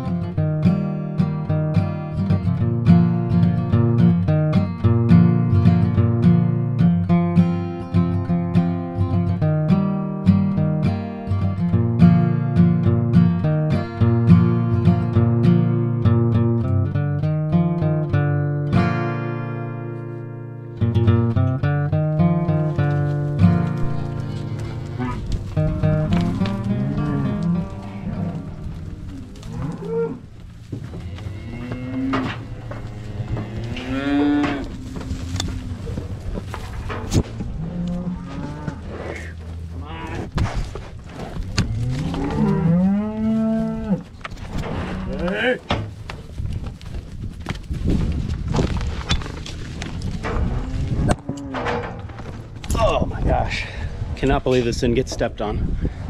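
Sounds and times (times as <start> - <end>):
acoustic guitar music: 0.0 - 37.6
hoof scuffs and knocks: 21.0 - 52.8
cows mooing: 22.0 - 40.4, 41.1 - 45.6, 50.2 - 52.3.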